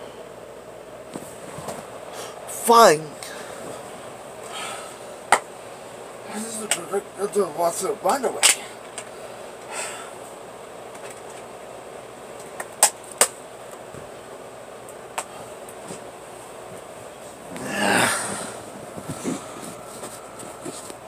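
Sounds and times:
faint room noise: 0.0 - 21.0.

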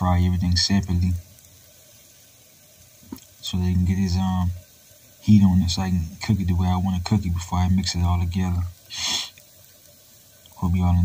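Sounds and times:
tomatoes sizzling in a pot: 0.0 - 11.0.

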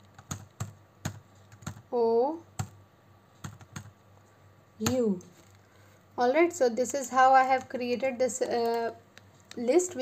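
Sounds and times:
computer keyboard keystrokes: 0.1 - 1.8, 3.4 - 3.9.

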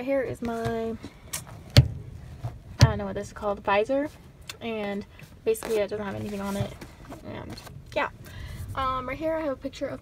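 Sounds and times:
car sun visor knocks: 1.7 - 3.3.

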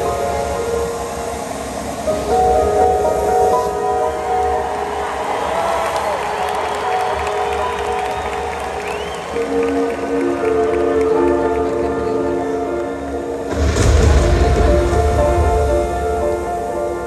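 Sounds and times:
music with sustained chords: 0.0 - 17.0
large crowd cheering: 3.6 - 17.0.

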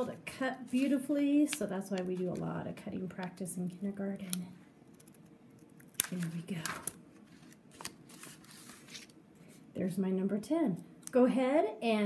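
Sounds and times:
paper rustling: 0.6 - 2.5, 6.1 - 9.2.

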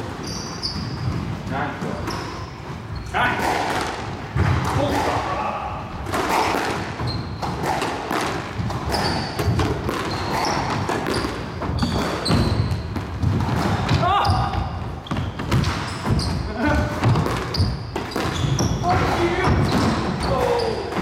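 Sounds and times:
shoes squeaking on wooden floor: 0.0 - 3.3, 6.2 - 21.0
squash ball hitting rackets and walls: 0.0 - 21.0.

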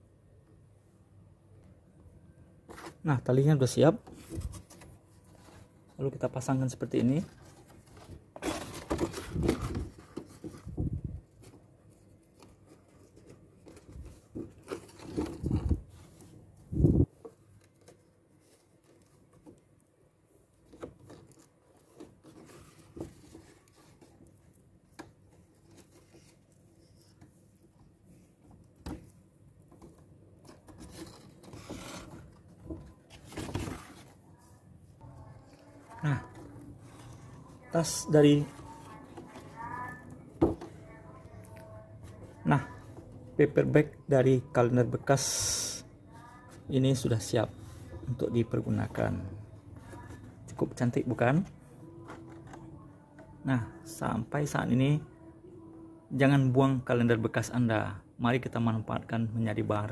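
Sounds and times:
stiff paper rustling and crinkling: 6.8 - 19.8.

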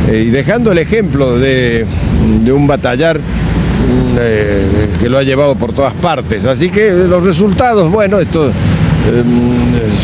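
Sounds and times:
man's voice: 0.0 - 10.0
rumble of passing cars: 0.0 - 10.0.

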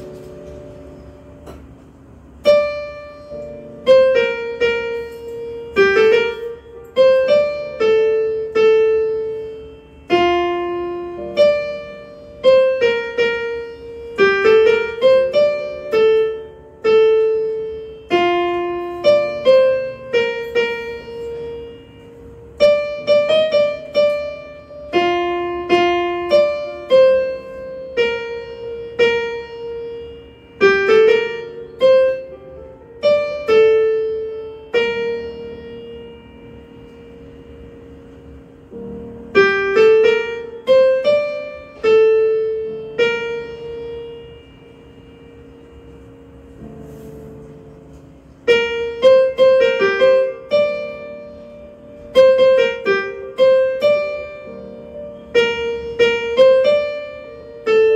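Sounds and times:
electronic keyboard piano notes: 0.0 - 57.9.

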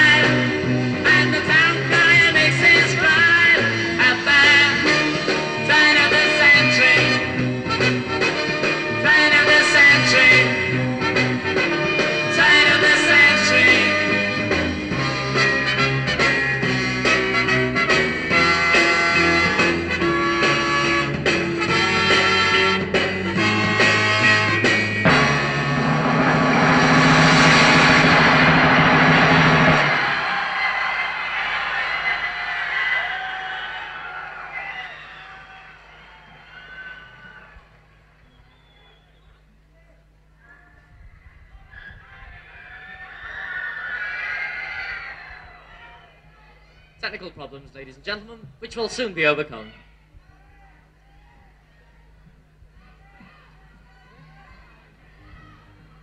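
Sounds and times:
live pop band playing: 0.0 - 30.5
audience noise: 0.0 - 56.0.

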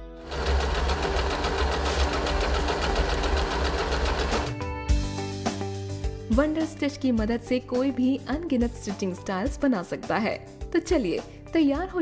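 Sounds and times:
music: 0.0 - 12.0
sewing machine stitching fast: 0.2 - 4.6.

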